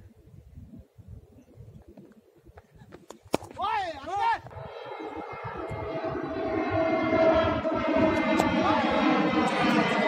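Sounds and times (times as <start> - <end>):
low uneven rumble: 4.4 - 10.0
steady horn-like tone: 4.5 - 10.0.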